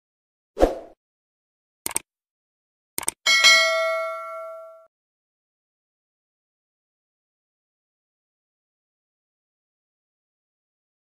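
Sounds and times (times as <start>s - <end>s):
mouse clicks: 3.0s - 3.2s
bright bell ding: 3.3s - 4.9s.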